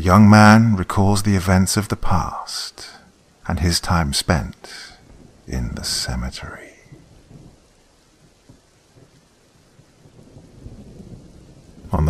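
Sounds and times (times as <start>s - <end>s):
steady rainfall hiss: 0.0s - 12.0s
low thunder rumbling: 4.3s - 12.0s.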